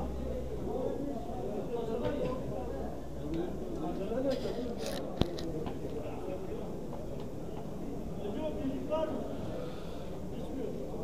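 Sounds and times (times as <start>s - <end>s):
people talking: 0.0s - 9.6s.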